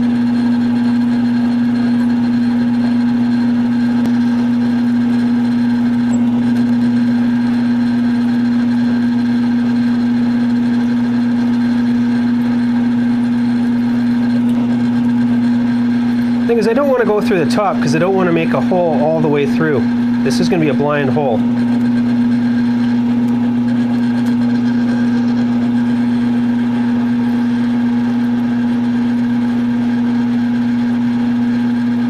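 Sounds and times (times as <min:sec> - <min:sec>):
mill-drill motor humming: 0:00.0 - 0:32.0.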